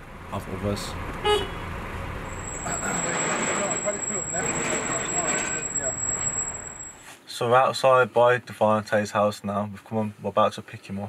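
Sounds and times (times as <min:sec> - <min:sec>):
street traffic noise: 0:00.0 - 0:07.2
car horn toot: 0:01.2 - 0:01.7
thin high-pitched whine: 0:02.3 - 0:07.0
indistinct voices: 0:02.4 - 0:06.8.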